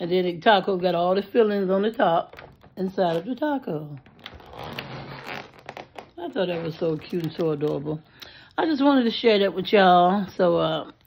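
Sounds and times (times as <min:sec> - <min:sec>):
small crackles: 0:01.8 - 0:08.6
foil balloon crinkling: 0:02.2 - 0:08.0.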